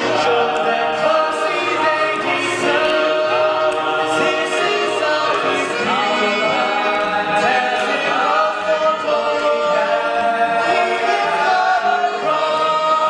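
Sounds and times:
male ensemble singing: 0:00.0 - 0:13.0.

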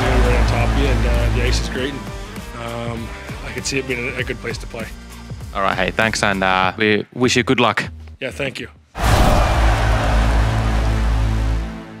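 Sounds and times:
heavy cinematic hit: 0:09.0 - 0:11.4.

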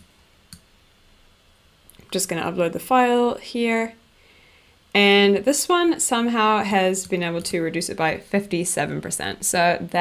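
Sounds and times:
computer mouse clicks: 0:00.0 - 0:00.7.

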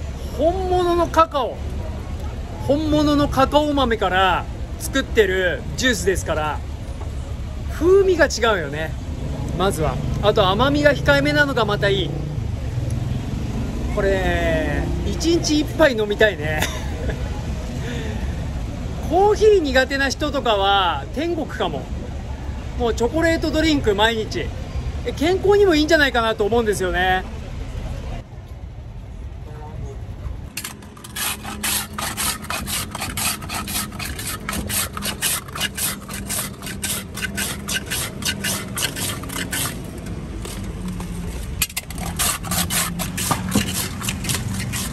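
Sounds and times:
vehicle engine rumble: 0:00.0 - 0:44.9
metal scraper shaving ice: 0:30.5 - 0:44.9.

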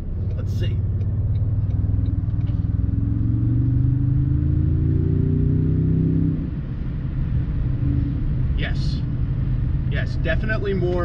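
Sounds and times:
turbo engine accelerating: 0:00.0 - 0:11.0.

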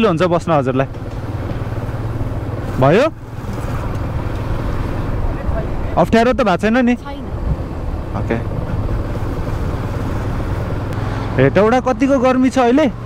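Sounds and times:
motorcycle engine running: 0:00.0 - 0:13.0
wind rushing over microphone: 0:00.8 - 0:11.5.

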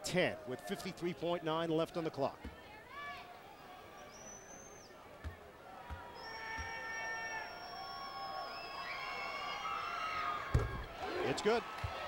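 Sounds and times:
crowd whistling and yelling: 0:03.5 - 0:12.0.

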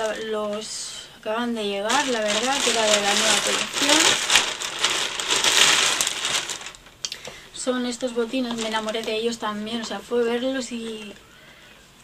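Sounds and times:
plastic bag crinkling: 0:00.0 - 0:11.2.

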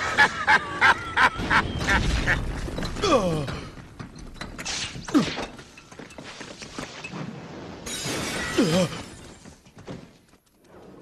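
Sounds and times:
cackling laugh: 0:00.0 - 0:02.4.

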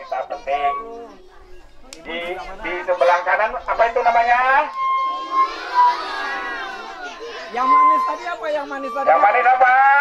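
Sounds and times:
children calling out in chorus: 0:00.0 - 0:10.0.

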